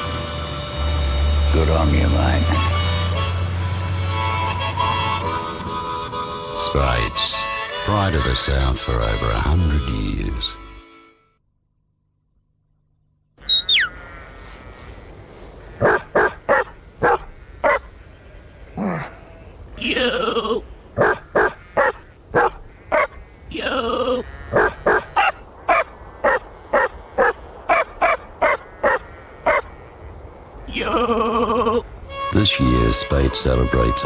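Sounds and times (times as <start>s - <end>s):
dog barking: 15.8s - 17.9s, 21.0s - 23.2s, 24.5s - 29.7s
dog howling: 24.5s - 29.7s.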